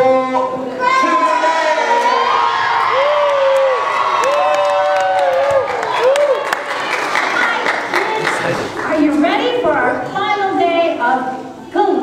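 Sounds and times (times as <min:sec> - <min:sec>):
children shouting and cheering: 0:00.8 - 0:08.4.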